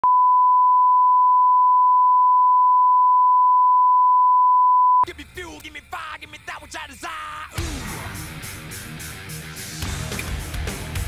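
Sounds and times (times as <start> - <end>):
steady test tone beep: 0.0 - 5.0.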